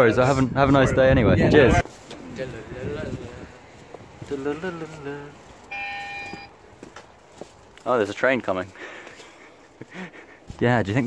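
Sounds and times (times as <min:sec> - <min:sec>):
doorbell electronic tone: 0:05.7 - 0:06.5.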